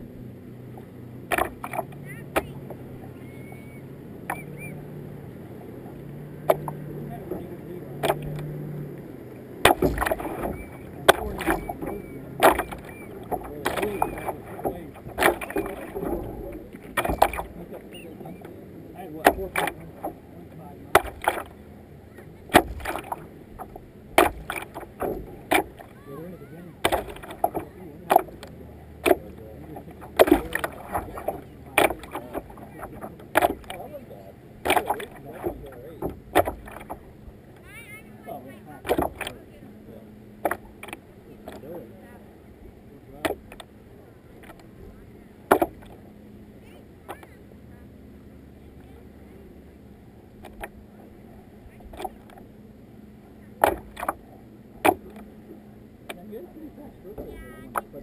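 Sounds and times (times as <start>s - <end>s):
kayak paddle strokes splashing: 0.0s - 58.0s.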